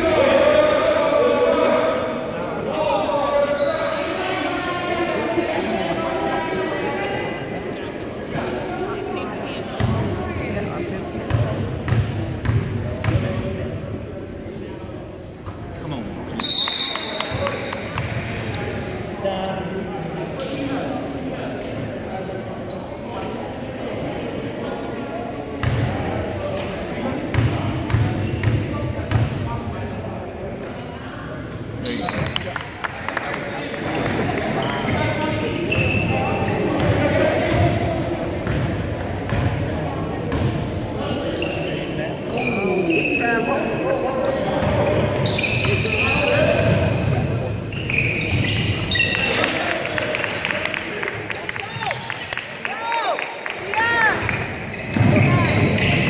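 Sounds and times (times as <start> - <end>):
voices echoing in gym: 0.0 - 56.0
shoe squeaks: 3.0 - 4.4, 7.5 - 8.0, 20.7 - 21.3, 22.7 - 23.1, 31.8 - 33.8, 34.6 - 38.9, 40.1 - 44.1, 44.8 - 49.5, 54.2 - 56.0.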